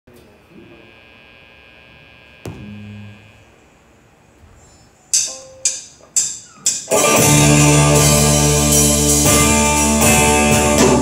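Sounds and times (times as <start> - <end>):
amplifier electrical hum and whine: 0.1 - 5.6.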